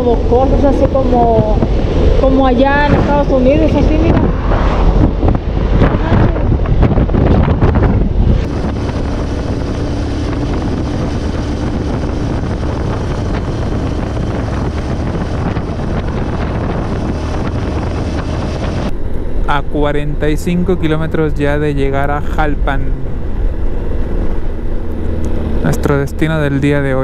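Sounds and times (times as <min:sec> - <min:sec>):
motorcycle engine and road noise: 0:00.0 - 0:27.0
wind buffeting on microphone: 0:00.0 - 0:27.0.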